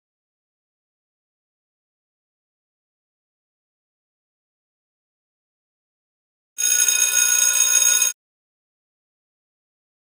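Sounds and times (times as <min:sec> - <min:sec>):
high-pitched electric bell ringing: 0:06.6 - 0:08.2.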